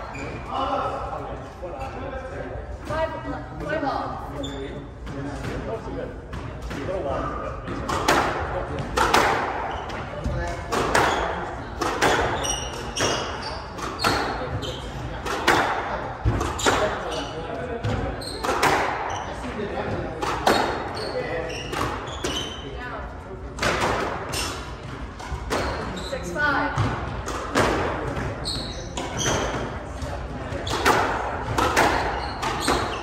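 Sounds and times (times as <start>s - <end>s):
squash ball hitting rackets and walls: 5.0s - 22.6s, 23.5s - 33.0s
shoes squeaking on wooden floor: 12.0s - 15.1s, 20.5s - 22.7s, 25.4s - 26.4s, 28.2s - 29.8s, 31.8s - 33.0s.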